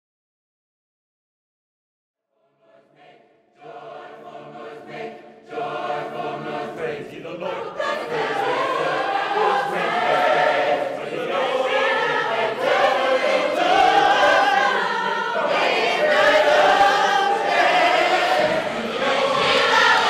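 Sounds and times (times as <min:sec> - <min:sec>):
gospel choir singing: 0:02.5 - 0:20.0.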